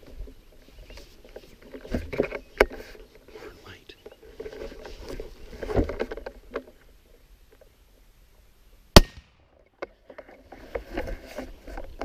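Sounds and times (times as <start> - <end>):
small rustling noises: 0.0 - 8.8, 9.7 - 12.0
suppressed rifle shot: 9.0 - 9.5.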